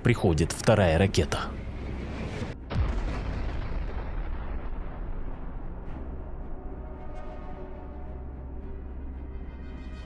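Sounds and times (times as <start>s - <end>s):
explosion boom and rumble: 2.2s - 7.3s.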